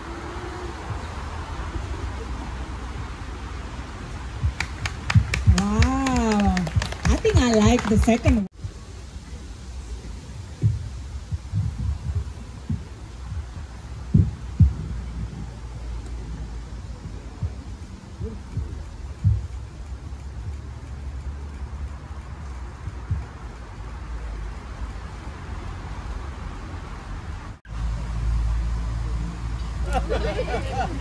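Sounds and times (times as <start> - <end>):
dull low thumps: 0.0 - 9.0, 9.7 - 27.6
steady low rumble: 0.0 - 31.0.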